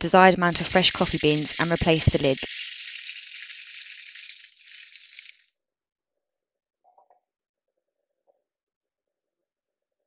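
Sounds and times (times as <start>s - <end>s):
coffee beans rattling into container: 0.5s - 5.5s.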